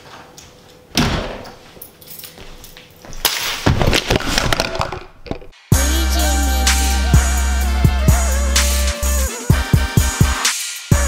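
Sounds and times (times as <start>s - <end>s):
music with steady beat: 5.7s - 11.0s.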